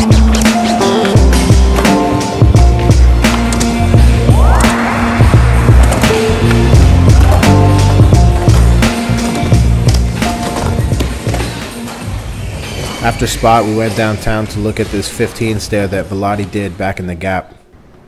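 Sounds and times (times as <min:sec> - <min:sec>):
music with heavy bass beat: 0:00.0 - 0:11.6
skateboard wheels rolling: 0:00.0 - 0:13.2.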